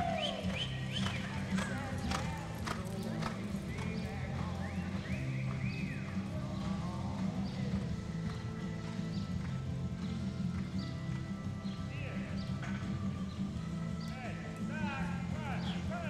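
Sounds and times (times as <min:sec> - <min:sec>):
horse hoofbeats on dirt: 0:00.0 - 0:16.0.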